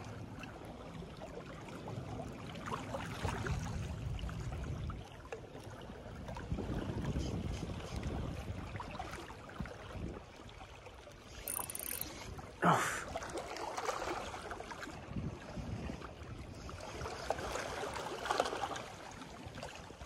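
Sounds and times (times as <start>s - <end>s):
waves lapping against rocks: 0.0s - 20.0s
wind rumbling on microphone: 3.3s - 5.1s, 5.8s - 10.3s, 14.9s - 17.3s.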